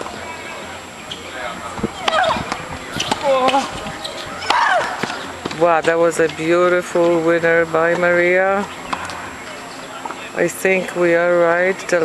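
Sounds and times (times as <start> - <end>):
woman shrieking: 4.4 - 5.0.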